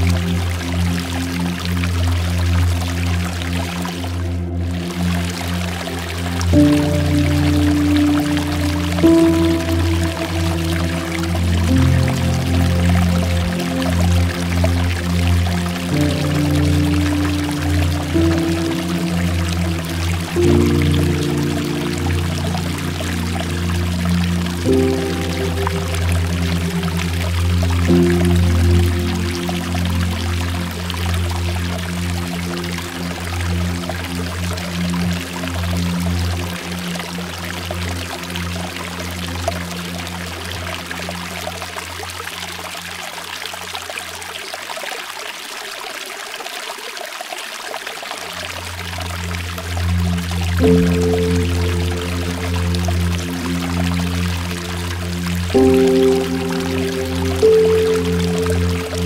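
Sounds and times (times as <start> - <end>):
slow ambient music: 0.0 - 45.0, 48.0 - 59.0
water falling and dripping: 0.0 - 59.0.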